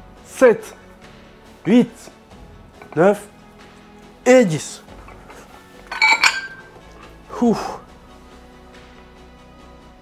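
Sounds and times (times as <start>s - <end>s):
dumbbell plates clinking: 2.8s - 3.2s, 5.0s - 6.9s.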